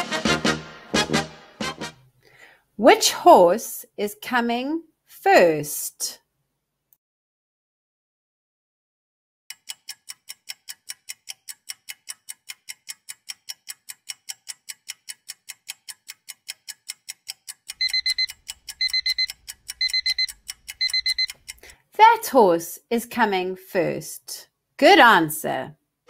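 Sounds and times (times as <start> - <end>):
clock ticking quickly: 9.5 - 21.8
high alarm clock beeps: 17.7 - 21.4.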